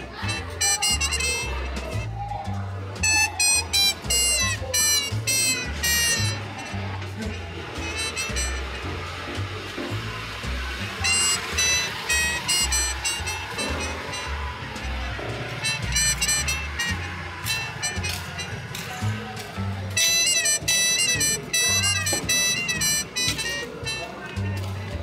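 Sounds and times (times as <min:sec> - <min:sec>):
jazz lead melody: 0:00.0 - 0:02.1, 0:02.9 - 0:25.0
walking bass line: 0:00.0 - 0:25.0.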